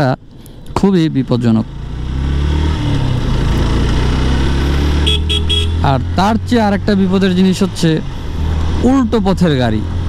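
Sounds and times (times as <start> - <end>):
wind and road noise: 0.0 - 10.0
motorcycle engine cruising: 1.0 - 10.0.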